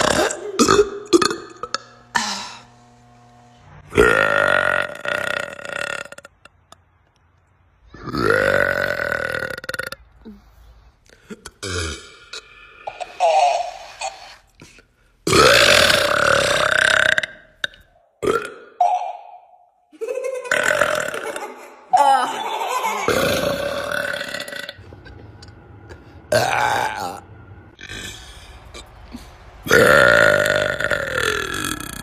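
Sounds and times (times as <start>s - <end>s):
woman belching: 0.0s - 2.6s, 3.9s - 6.8s, 8.0s - 10.0s, 15.3s - 18.8s, 20.5s - 21.4s, 23.1s - 24.8s, 26.3s - 27.2s, 29.7s - 32.0s.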